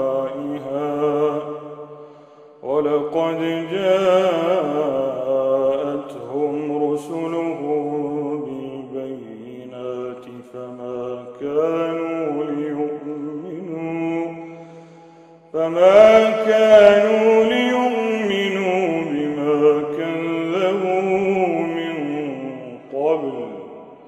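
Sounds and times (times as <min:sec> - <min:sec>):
man reciting melodically: 0:00.0 - 0:24.0.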